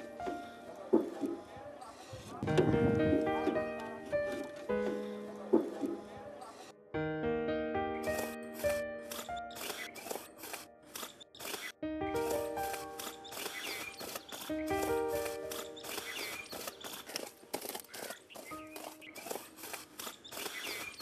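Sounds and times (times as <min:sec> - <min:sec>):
film music: 0:00.0 - 0:01.5, 0:02.3 - 0:20.1.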